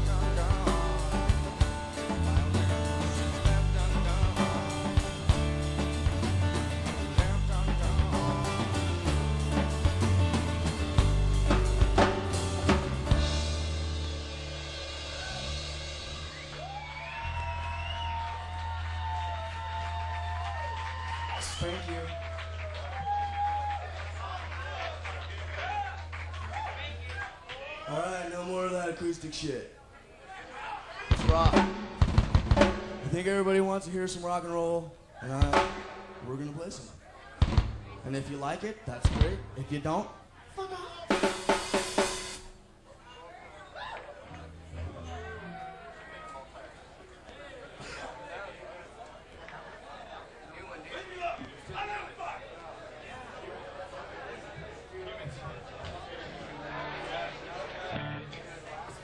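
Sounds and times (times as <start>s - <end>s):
faint crowd noise: 0.0s - 59.0s
drum kit quick strikes: 31.1s - 33.3s, 35.4s - 36.6s, 37.4s - 38.0s, 41.1s - 42.6s.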